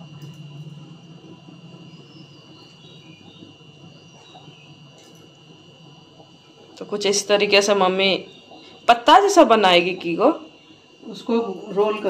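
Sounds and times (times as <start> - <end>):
faint high-pitched insect chirring: 0.0 - 12.0.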